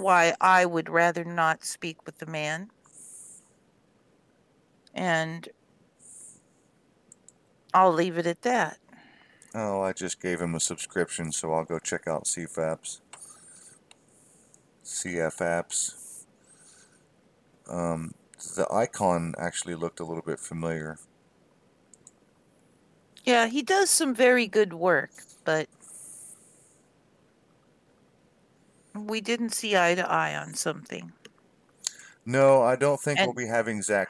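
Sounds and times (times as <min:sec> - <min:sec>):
person speaking: 0:00.0 - 0:03.2, 0:04.9 - 0:05.5, 0:07.7 - 0:08.8, 0:09.5 - 0:13.6, 0:14.9 - 0:16.2, 0:17.7 - 0:21.0, 0:23.2 - 0:26.3, 0:29.0 - 0:31.3, 0:31.9 - 0:34.0
soft high hiss: 0:00.0 - 0:34.0
faint clicks: 0:07.1 - 0:07.5, 0:13.1 - 0:14.6, 0:21.9 - 0:22.2.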